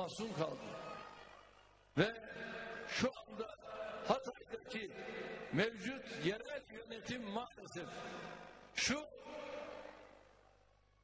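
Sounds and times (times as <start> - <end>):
man's voice echoing through pa: 0.0 - 1.0, 1.9 - 10.3.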